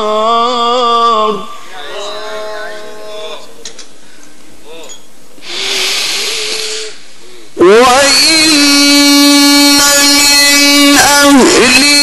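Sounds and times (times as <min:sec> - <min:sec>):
person breathing in: 0:05.4 - 0:07.6.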